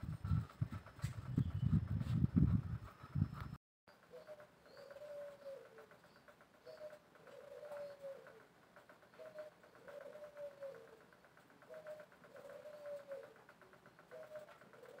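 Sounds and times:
dove cooing: 4.1 - 6.0, 6.6 - 15.0.

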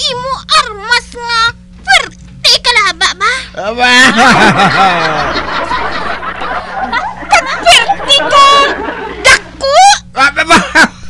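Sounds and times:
person laughing: 4.2 - 8.8, 10.4 - 11.0.

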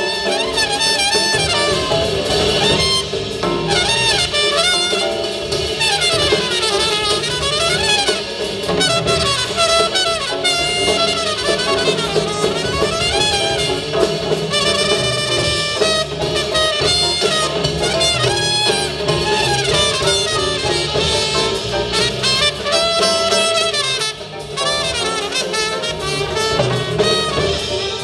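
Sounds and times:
drums: 0.0 - 28.0
piano: 0.0 - 28.0
trumpet soloing: 0.0 - 28.0
upright bass: 0.1 - 28.0.

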